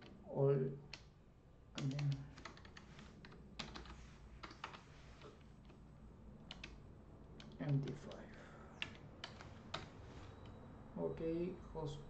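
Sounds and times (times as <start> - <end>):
keyboard keystroke clicks: 6.4 - 6.8.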